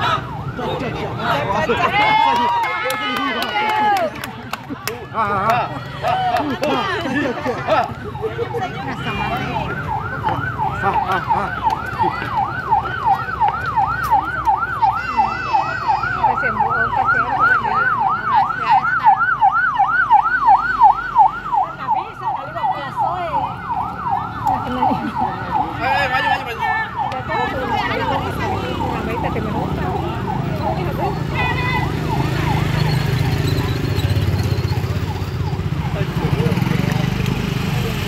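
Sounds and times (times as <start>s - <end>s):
ambulance siren yelping: 0.0s - 4.2s, 5.7s - 36.8s.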